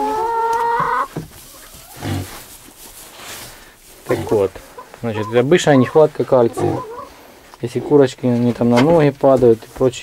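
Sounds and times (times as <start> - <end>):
pig grunting: 1.9 - 2.4, 4.1 - 4.5, 6.3 - 7.1
pig whining: 5.2 - 7.2.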